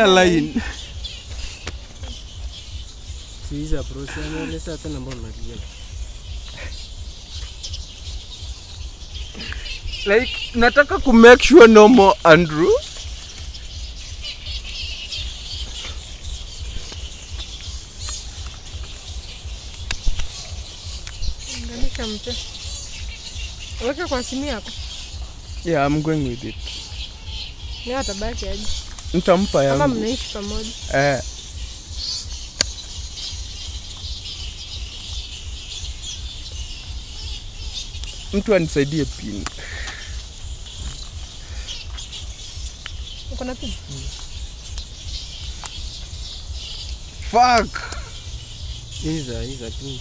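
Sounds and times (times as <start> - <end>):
birds chirping: 0.0 - 50.0
insects: 0.0 - 50.0.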